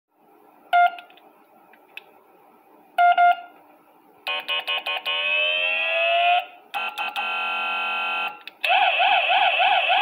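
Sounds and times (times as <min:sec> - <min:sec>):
short electronic beeps: 0:03.0 - 0:03.5.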